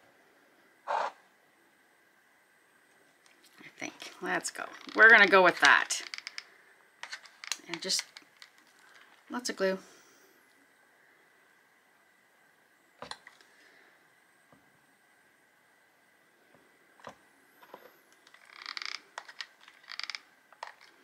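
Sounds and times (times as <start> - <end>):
small hard objects clicking: 4.6 - 9.2, 18.1 - 21.0.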